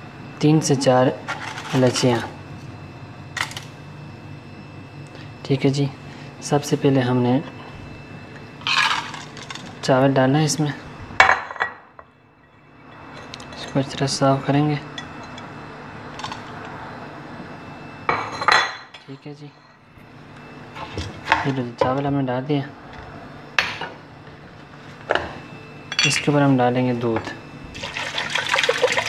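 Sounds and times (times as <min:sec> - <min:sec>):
steady background noise: 0:00.0 - 0:29.0.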